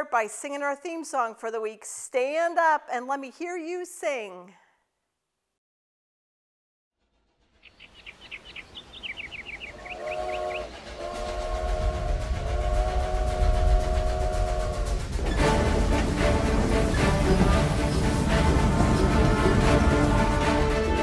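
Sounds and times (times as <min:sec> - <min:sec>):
moving train rumble: 0:07.0 - 0:21.0
steam locomotive whistle: 0:09.7 - 0:21.0
music: 0:11.0 - 0:21.0.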